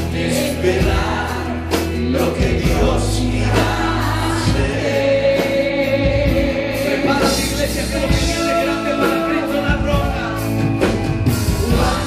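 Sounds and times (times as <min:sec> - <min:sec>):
choir singing over a band: 0:00.0 - 0:12.0
drums steady beat: 0:00.0 - 0:12.0.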